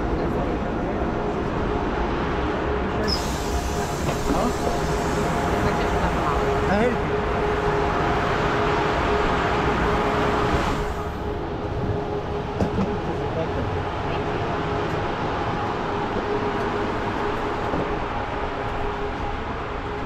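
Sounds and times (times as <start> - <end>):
station platform noise: 0.0 - 20.0
train equipment humming: 0.0 - 20.0.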